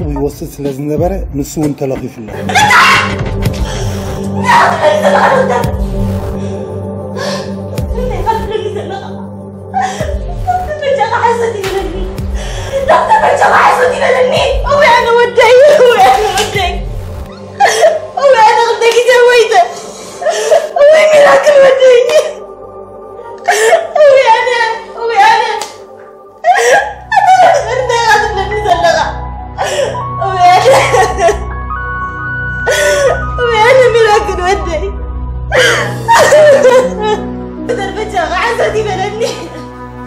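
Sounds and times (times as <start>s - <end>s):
background music: 0.0s - 40.0s
woman crying and wailing: 2.4s - 3.3s, 4.3s - 39.7s.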